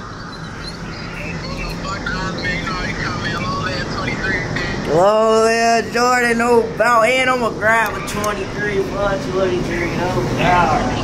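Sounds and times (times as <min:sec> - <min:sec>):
low hum: 0:00.0 - 0:11.0
outdoor street noise: 0:00.0 - 0:11.0.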